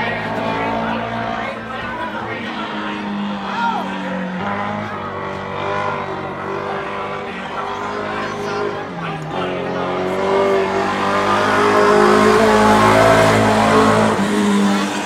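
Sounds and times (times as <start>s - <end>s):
small car engine running laps: 0.0s - 15.0s.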